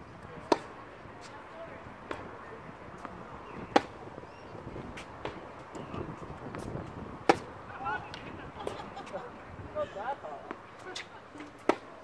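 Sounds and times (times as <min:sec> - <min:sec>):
tennis ball hits: 0:00.4 - 0:00.8, 0:02.0 - 0:02.3, 0:03.0 - 0:04.0, 0:06.5 - 0:07.5, 0:11.5 - 0:12.0.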